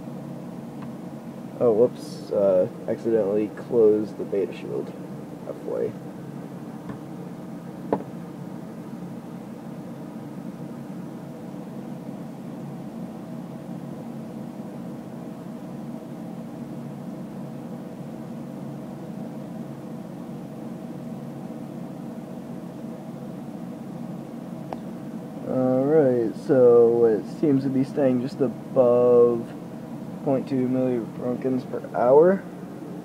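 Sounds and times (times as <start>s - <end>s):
background hum with steady tones: 0.0s - 33.0s.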